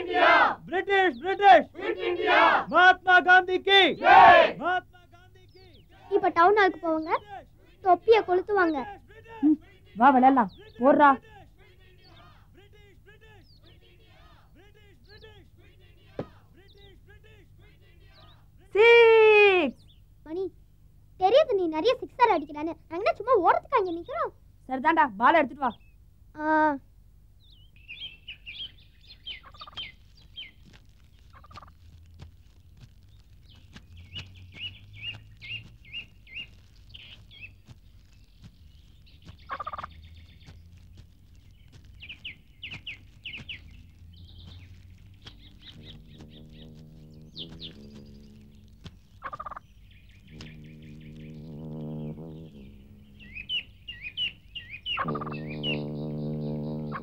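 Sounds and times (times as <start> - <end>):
birds chirping: 0.0 - 26.3, 27.2 - 57.0.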